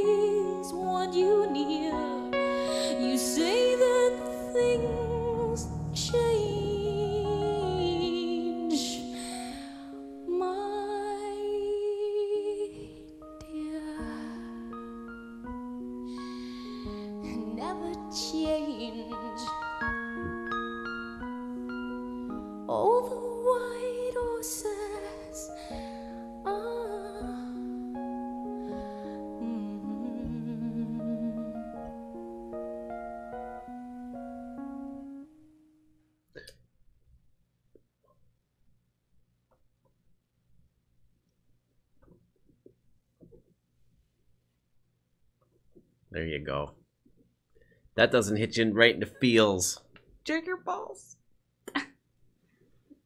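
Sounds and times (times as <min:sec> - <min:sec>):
piano notes: 0:00.0 - 0:36.0
woman singing long note: 0:03.0 - 0:09.1.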